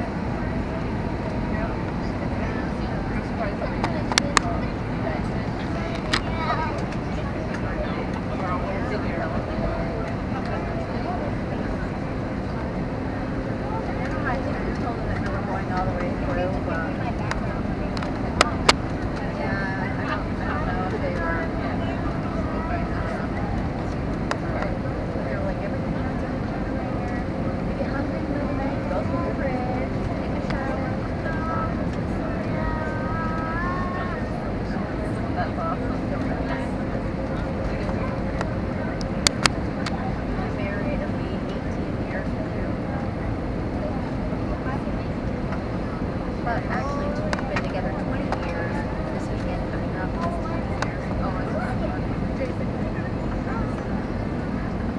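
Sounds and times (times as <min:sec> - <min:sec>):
airliner cabin engine rumble: 0:00.0 - 0:54.9
voices in cabin: 0:00.0 - 0:54.9.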